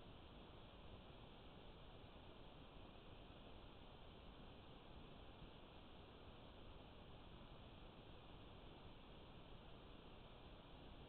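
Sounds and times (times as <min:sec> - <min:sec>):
faint recorder hiss: 0:00.0 - 0:11.0.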